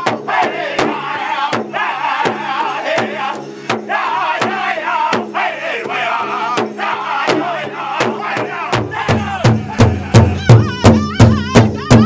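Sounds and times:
large drum steady beat: 0:00.0 - 0:12.0
men singing in unison: 0:00.0 - 0:12.0.

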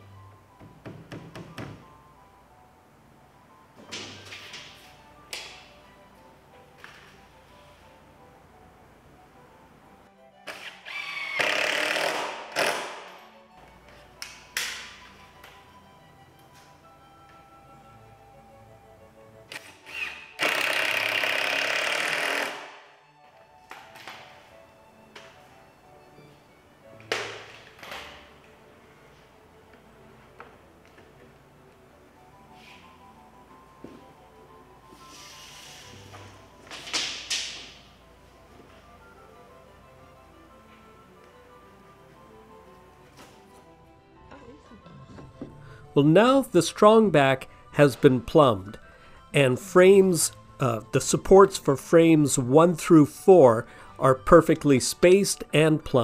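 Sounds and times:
background music: 0:00.0 - 0:56.0
knocks of wood and tools: 0:00.6 - 0:01.9
power drill driving screws: 0:10.5 - 0:13.0, 0:19.5 - 0:22.8.

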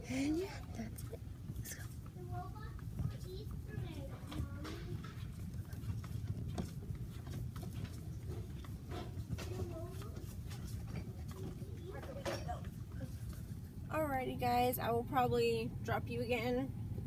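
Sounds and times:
steady low rumble: 0:00.0 - 0:17.0
faint voices: 0:08.3 - 0:13.6.

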